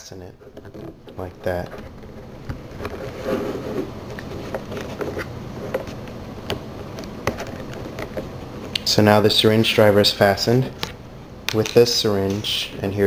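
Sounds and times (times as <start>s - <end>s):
handling noise: 0.3s - 9.0s.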